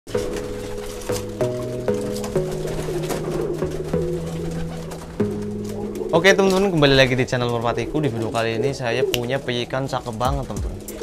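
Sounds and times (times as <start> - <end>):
music of held chords: 0.1 - 11.0
pigeons cooing: 0.1 - 11.0.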